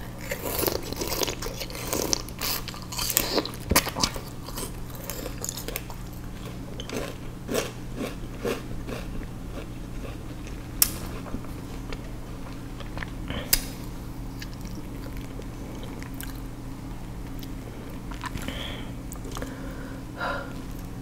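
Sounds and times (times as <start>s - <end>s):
crunchy chewing of sugarcane: 0.0s - 13.7s, 14.3s - 16.5s, 17.2s - 19.6s
low steady hum: 0.0s - 21.0s.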